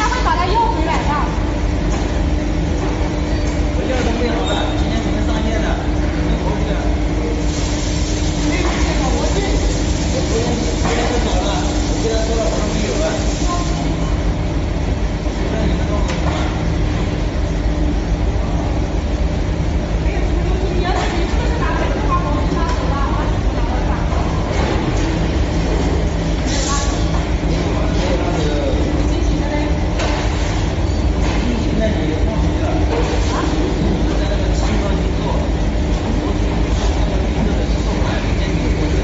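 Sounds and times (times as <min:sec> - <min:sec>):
factory machinery rumble: 0:00.0 - 0:39.0.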